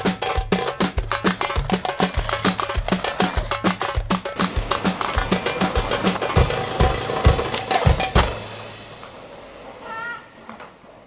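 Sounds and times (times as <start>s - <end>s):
music: 0.0s - 9.1s.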